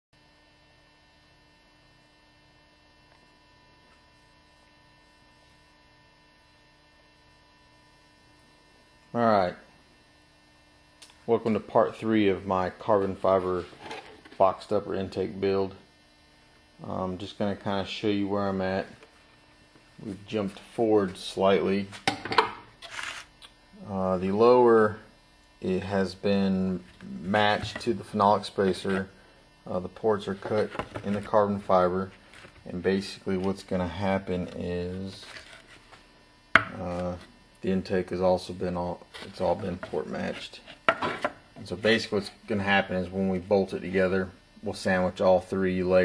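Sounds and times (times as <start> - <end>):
faint electrical hum: 0.2 - 46.0
man speaking: 11.3 - 13.7, 14.3 - 15.8, 16.8 - 19.0, 20.0 - 22.0, 23.8 - 25.0, 25.6 - 29.1, 29.7 - 35.4, 36.7 - 40.6, 41.6 - 46.0.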